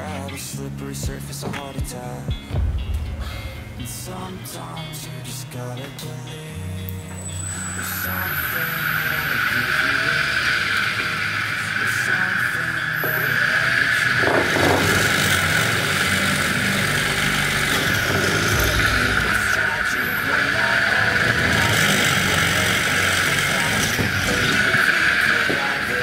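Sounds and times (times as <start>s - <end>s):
background music: 0.0s - 26.0s
electric motor drilling wood: 7.2s - 26.0s.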